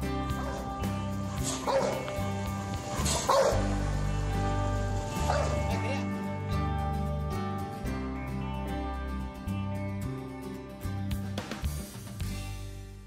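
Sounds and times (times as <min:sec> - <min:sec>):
background music: 0:00.0 - 0:13.0
dog barking: 0:01.4 - 0:02.2, 0:03.0 - 0:03.8, 0:05.2 - 0:06.0.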